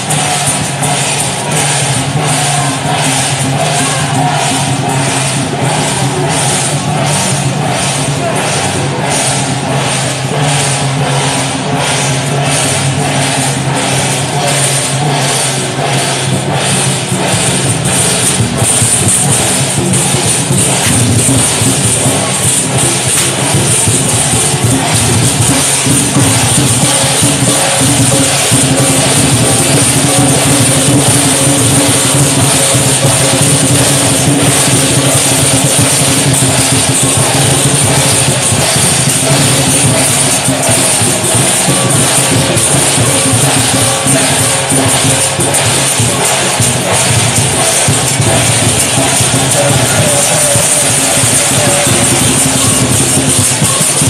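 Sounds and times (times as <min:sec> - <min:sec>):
cymbals clashing: 0:00.0 - 0:54.0
drums beating: 0:00.0 - 0:54.0
gongs: 0:00.0 - 0:54.0.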